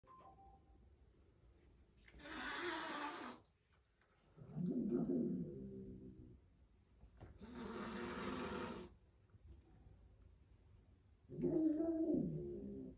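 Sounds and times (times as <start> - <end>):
kitten hissing: 2.2 - 3.4, 7.4 - 8.9.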